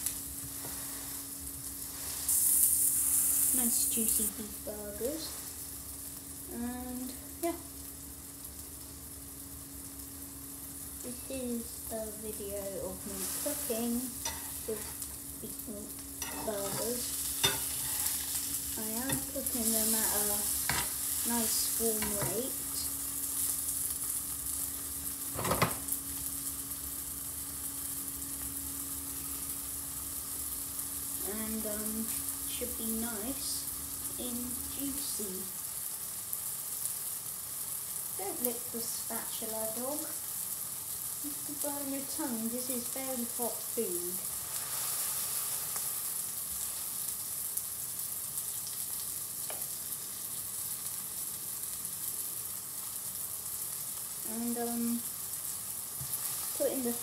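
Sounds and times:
burger patties sizzling in pan: 0.0 - 57.0.

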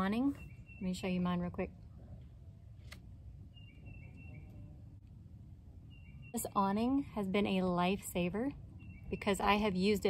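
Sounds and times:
bird whistling: 3.5 - 4.6
short lower bird chirps: 3.5 - 4.7.

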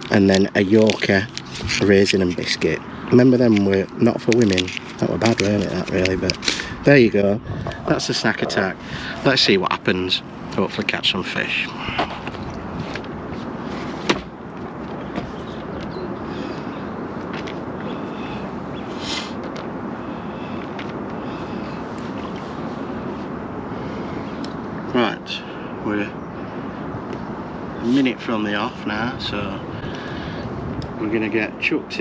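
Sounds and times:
wind on microphone: 0.0 - 10.6, 11.4 - 31.3.

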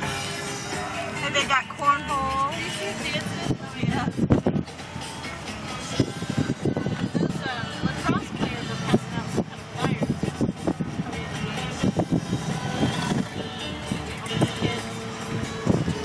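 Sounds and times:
car engine and road noise: 0.0 - 16.0
music with singing on car stereo: 0.0 - 16.0.

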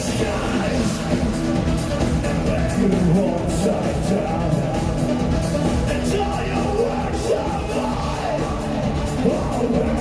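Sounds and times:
loud electronic music: 0.0 - 10.0
man shouting distorted vocals: 5.9 - 8.6.

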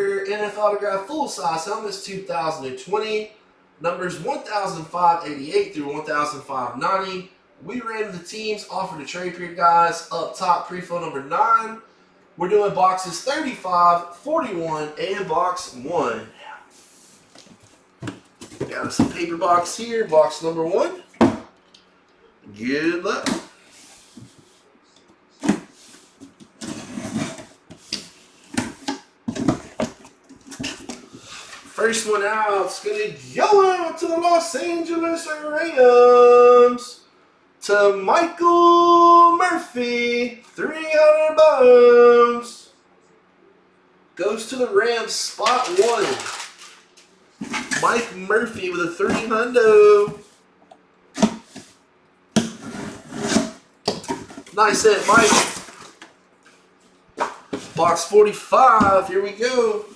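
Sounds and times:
paper and cardboard rustling: 45.4 - 50.4, 54.1 - 56.0.

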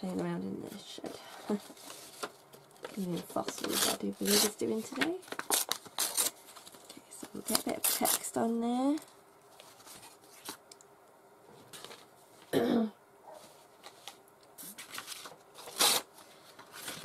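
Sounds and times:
handling torn paper scraps: 1.5 - 10.6
person clearing throat: 12.5 - 13.0.

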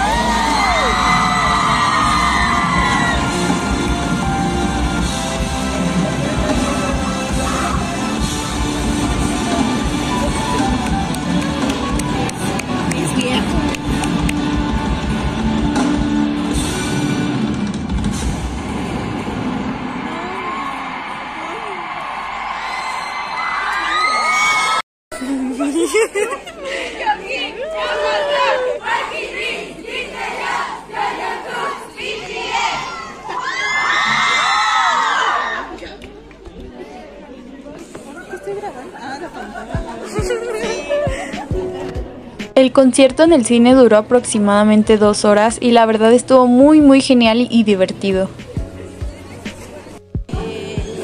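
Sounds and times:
loud concert music: 0.0 - 22.1, 39.6 - 42.6, 48.2 - 51.0
audience applauding: 9.1 - 14.7, 19.8 - 24.8
people chatting: 12.0 - 13.8, 42.6 - 51.0.

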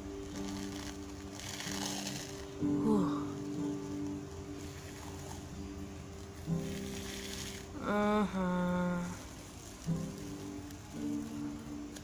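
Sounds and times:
face mask peeling rasp: 0.0 - 5.6, 6.3 - 8.6
background music held notes: 0.0 - 12.0
person groaning: 2.7 - 3.4, 7.8 - 9.2.

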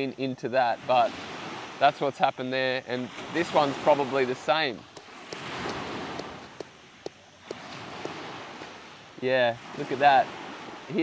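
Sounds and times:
surf: 0.6 - 11.0.

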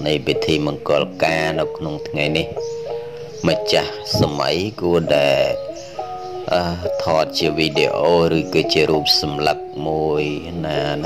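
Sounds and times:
man preaching: 0.0 - 2.6, 3.4 - 11.0
background music: 0.0 - 11.0.

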